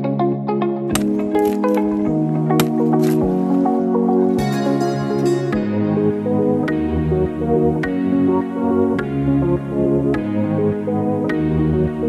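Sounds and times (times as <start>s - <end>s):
background music with held chords: 0.0s - 12.0s.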